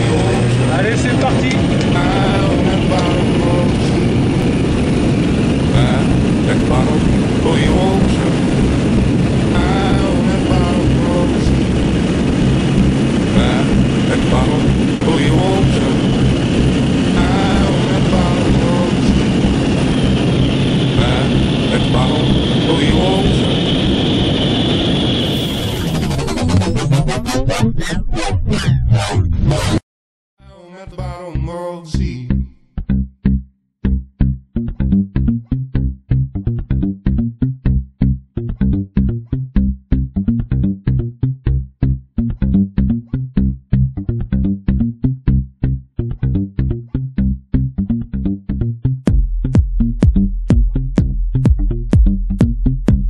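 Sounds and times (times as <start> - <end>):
voices: 0.0 - 4.2, 5.7 - 8.6, 9.6 - 11.6, 13.4 - 16.2, 17.2 - 19.4, 21.0 - 23.7
propeller aircraft engine droning: 0.0 - 26.2.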